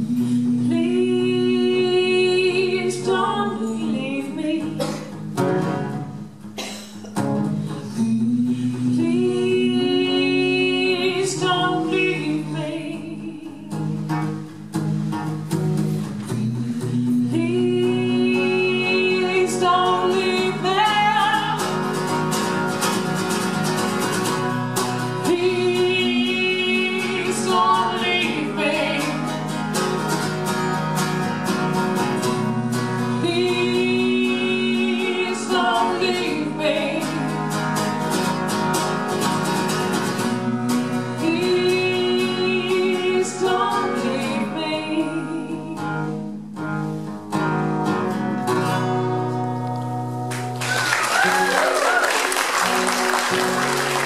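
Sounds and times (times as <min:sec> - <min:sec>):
person singing: 0:00.0 - 0:05.1, 0:07.7 - 0:13.8, 0:16.1 - 0:21.9, 0:25.2 - 0:29.5, 0:32.0 - 0:37.5, 0:40.2 - 0:46.1
acoustic guitar strumming: 0:00.0 - 0:54.0.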